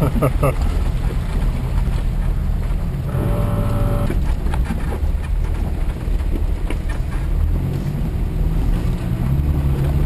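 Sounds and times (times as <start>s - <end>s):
engine low rumble: 0.0s - 10.0s
tires crawling over gravel: 0.0s - 10.0s
steady whine: 3.0s - 4.3s.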